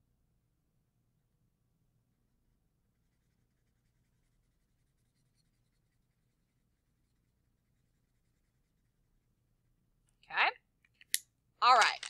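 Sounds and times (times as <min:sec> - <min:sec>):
marker scratching on paper: 0:03.0 - 0:09.1.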